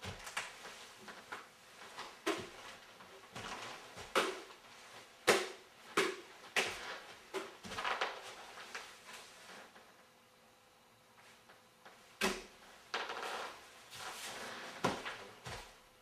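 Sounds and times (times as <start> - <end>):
umbrella whacking a watermelon: 4.0 - 4.5, 5.2 - 6.8.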